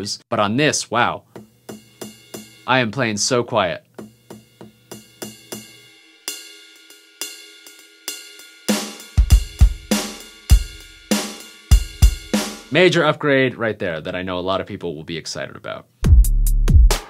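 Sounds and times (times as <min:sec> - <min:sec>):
deep kick drum: 0:09.2 - 0:10.8, 0:16.0 - 0:17.0.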